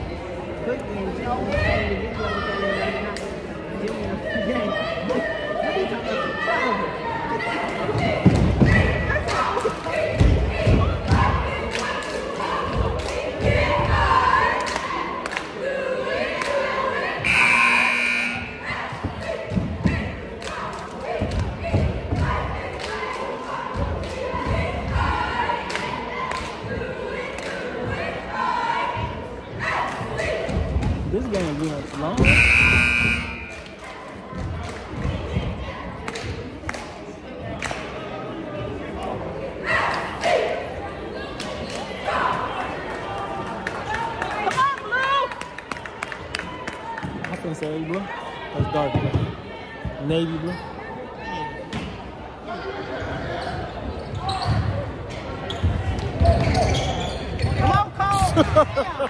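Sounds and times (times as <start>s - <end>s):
crowd chatter echoing: 0.0s - 59.0s
scoreboard horn: 17.2s - 18.8s, 32.2s - 33.6s.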